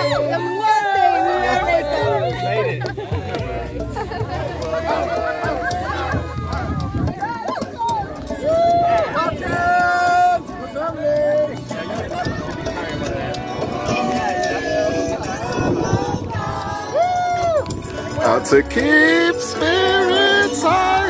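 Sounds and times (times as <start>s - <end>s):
music: 0.0s - 21.0s
voices singing and calling out: 0.0s - 21.0s.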